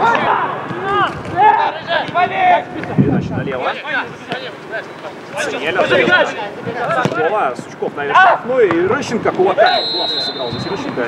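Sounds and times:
footballers shouting: 0.0 - 11.0.

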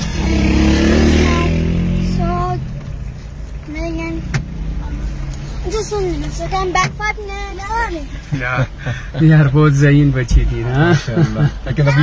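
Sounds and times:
vehicle passing by: 0.0 - 2.8.

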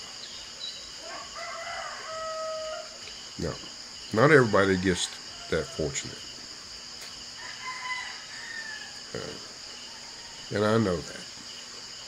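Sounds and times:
rooster crowing: 1.0 - 3.0, 4.9 - 6.1, 7.4 - 10.6.

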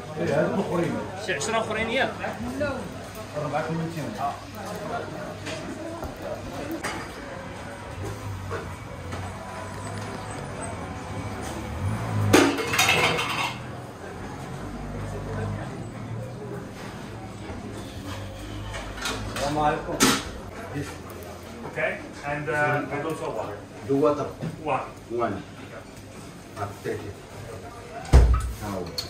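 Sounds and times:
dishes and glass clinking: 12.2 - 13.8.

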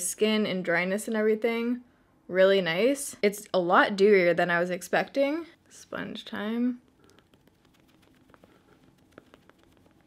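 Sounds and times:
makeup sponge tapping skin: 6.8 - 10.0.

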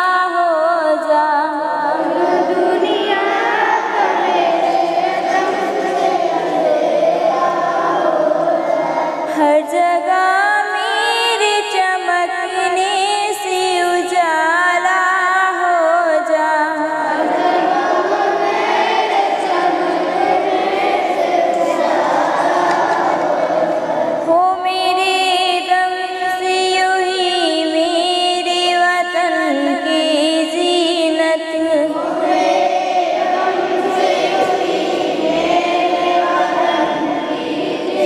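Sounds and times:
woman singing: 0.0 - 3.5, 9.3 - 17.4, 24.2 - 32.3
group singing in chorus: 0.0 - 12.8, 13.4 - 27.8, 28.4 - 38.0.

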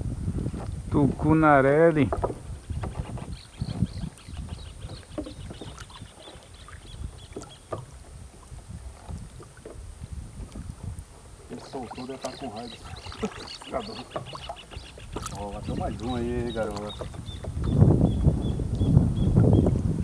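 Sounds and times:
low thumps in canoe: 0.0 - 20.0
water lapping against canoe hull: 0.0 - 20.0.

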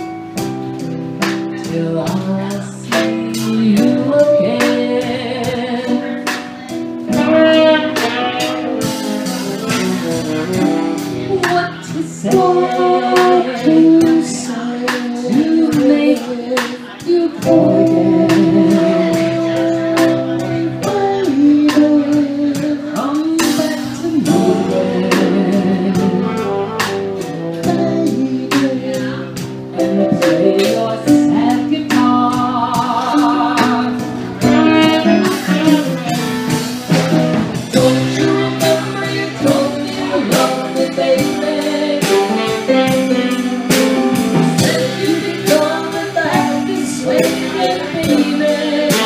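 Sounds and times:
jazz band playing: 0.0 - 49.0
keyboard: 0.0 - 49.0
steady drum beat: 0.0 - 49.0
woman singing: 1.5 - 49.0
saxophone: 7.1 - 14.2, 23.4 - 29.0, 33.1 - 49.0.

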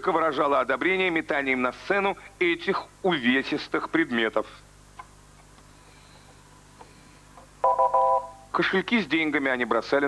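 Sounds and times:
faint studio hum: 0.0 - 10.0
loud multi-tone electronic beep: 7.6 - 8.4.

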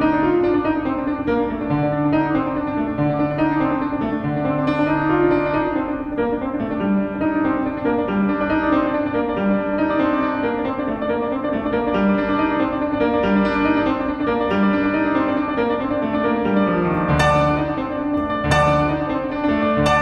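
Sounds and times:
solo classical piano: 0.0 - 20.0.

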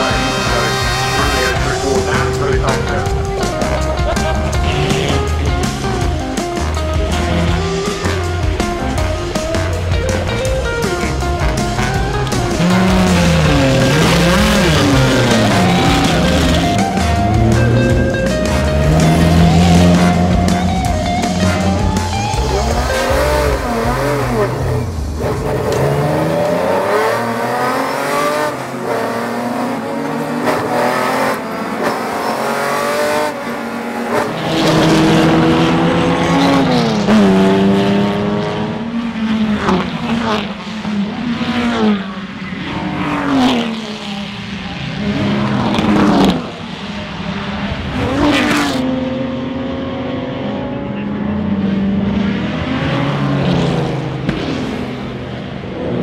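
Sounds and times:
racing car engines revving: 0.0 - 56.0
racing cars passing by: 0.0 - 56.0.

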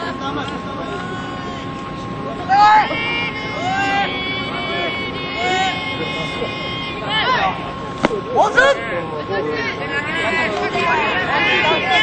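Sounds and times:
players shouting drawn-out calls: 2.4 - 12.0.

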